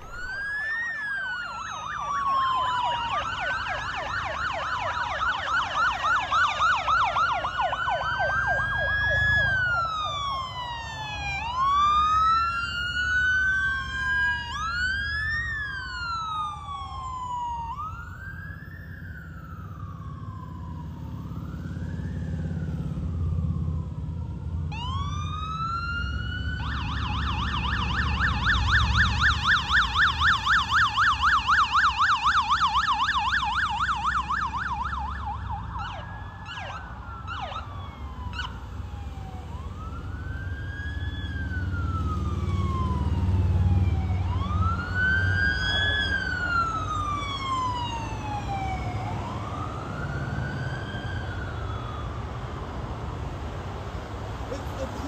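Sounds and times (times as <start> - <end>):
short siren blips: 0.0 - 3.6
siren yelp: 0.0 - 52.5, 54.4 - 55.0
low traffic rumble: 0.0 - 55.0
police sirens wailing: 0.0 - 55.0.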